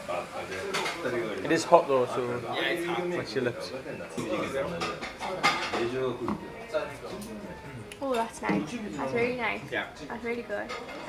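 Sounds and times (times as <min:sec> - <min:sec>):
murmured voices: 0:00.0 - 0:11.0
tableware clinking: 0:00.5 - 0:01.1, 0:04.2 - 0:09.4, 0:10.6 - 0:11.0.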